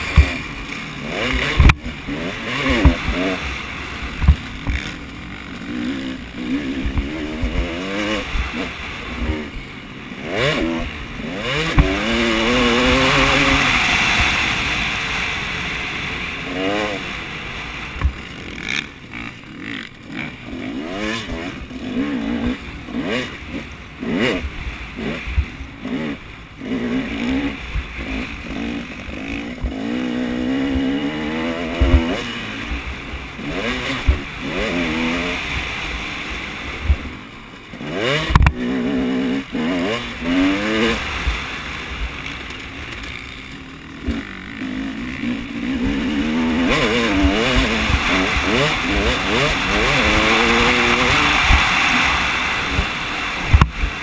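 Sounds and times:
dirt bike engine revving: 0.0s - 54.0s.

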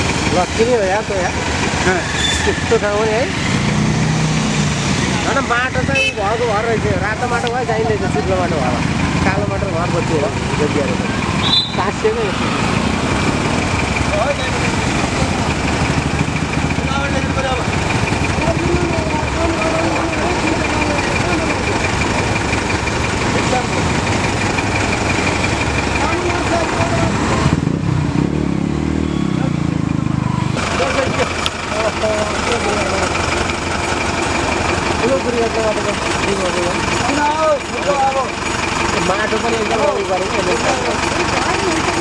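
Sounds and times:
heavy vehicle engine running: 0.0s - 42.0s
crowd voices: 5.0s - 27.6s, 29.2s - 42.0s.

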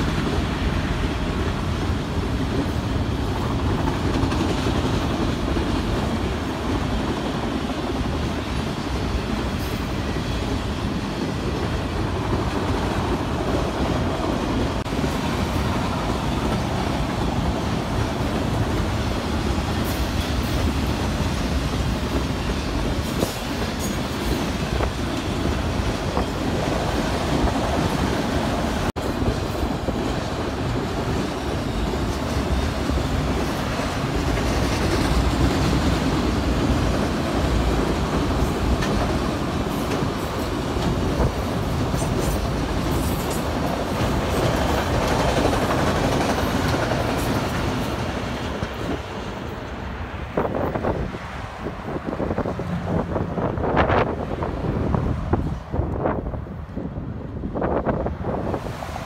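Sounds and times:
train wheels on rails: 0.0s - 59.0s.

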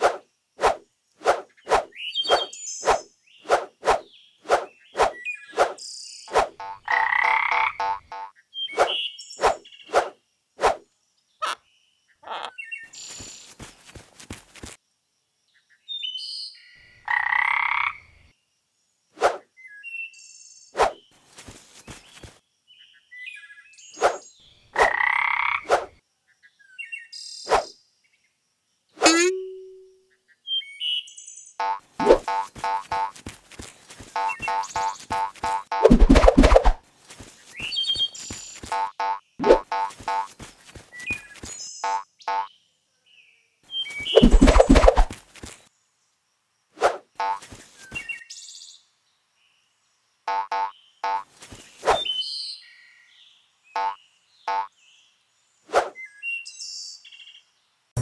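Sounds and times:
frog croaks: 6.5s - 8.3s, 12.2s - 12.6s, 17.0s - 18.1s, 24.8s - 25.7s.

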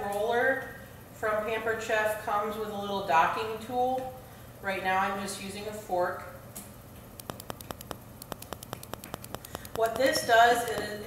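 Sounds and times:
fork tapping through dough: 7.2s - 11.0s.

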